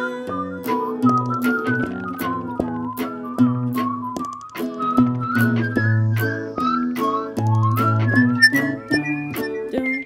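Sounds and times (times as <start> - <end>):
whistled melody: 0.0 - 10.0
strummed acoustic guitar: 0.3 - 10.0.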